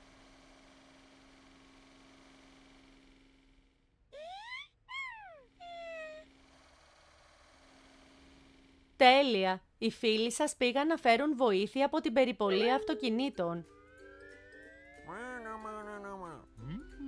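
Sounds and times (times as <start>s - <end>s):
cartoon whimpering cries: 4.2s - 6.3s, 12.5s - 13.3s, 15.0s - 17.0s.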